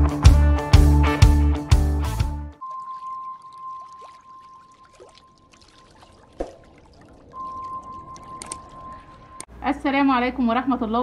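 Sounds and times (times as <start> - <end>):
thin high tone: 2.6 - 6.3, 7.3 - 9.5.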